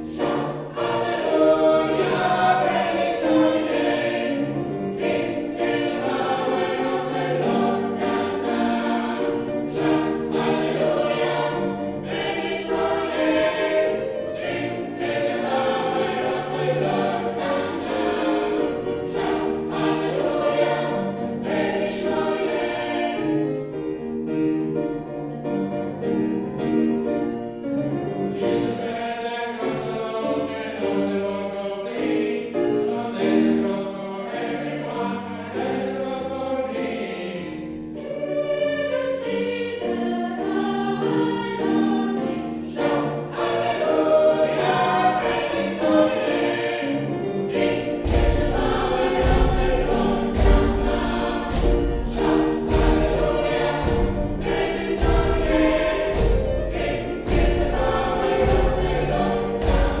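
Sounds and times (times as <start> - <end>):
choir singing in harmony: 0.0 - 60.0
piano accompaniment: 0.0 - 60.0
low thumps beat: 48.0 - 60.0.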